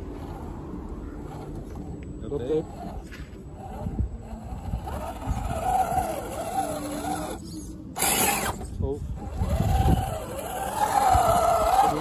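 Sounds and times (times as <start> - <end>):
electric motor and gearbox whining: 0.0 - 12.0.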